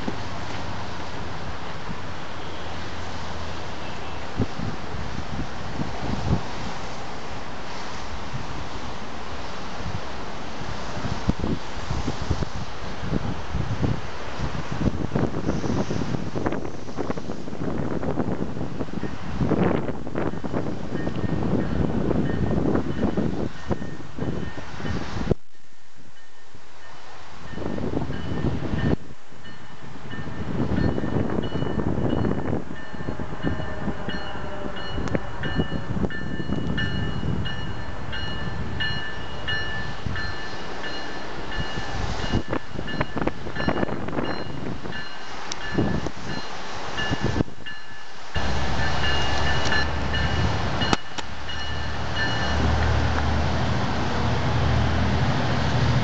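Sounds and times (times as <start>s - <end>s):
diesel train rumble: 0.0s - 56.0s.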